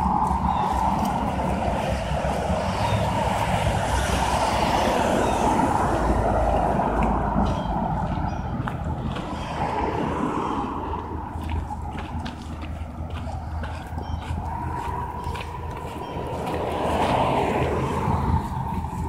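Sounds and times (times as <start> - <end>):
passing cars rumbling: 0.0 - 19.0.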